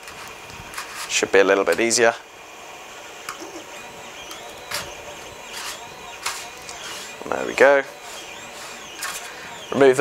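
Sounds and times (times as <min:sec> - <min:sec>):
plastic scraping and clicking: 0:08.2 - 0:09.3.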